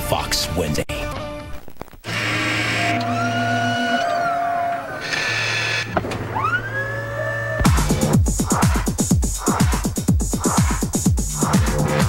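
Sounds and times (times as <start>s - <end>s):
fast electronic beat: 7.6s - 12.0s.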